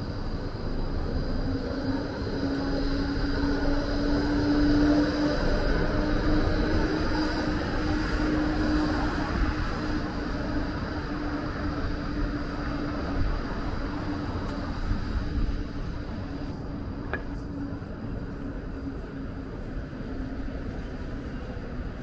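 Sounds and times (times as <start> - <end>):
street traffic: 0.0 - 22.0
tram passing: 0.0 - 22.0.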